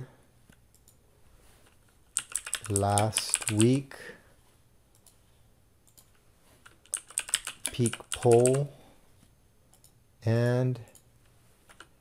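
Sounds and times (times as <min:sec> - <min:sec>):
typing on computer keyboard: 0:02.1 - 0:03.7, 0:05.9 - 0:08.7.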